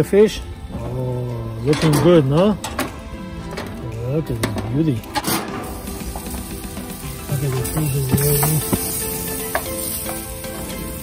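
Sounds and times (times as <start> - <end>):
background music: 0.0 - 11.0
fish sizzling on a grill: 3.9 - 11.0.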